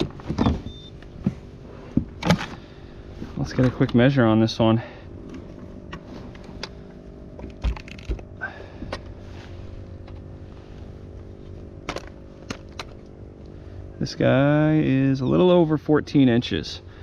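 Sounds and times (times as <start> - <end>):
faint low hum: 0.0 - 17.0.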